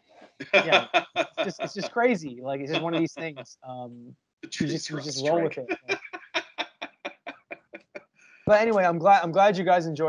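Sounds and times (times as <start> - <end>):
man laughing hard: 0.6 - 3.4.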